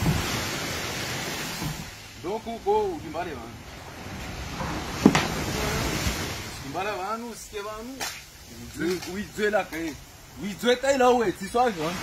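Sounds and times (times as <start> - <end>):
surf rushing: 0.0 - 12.0
wind on microphone: 0.0 - 12.0
short low thump: 4.5 - 6.2.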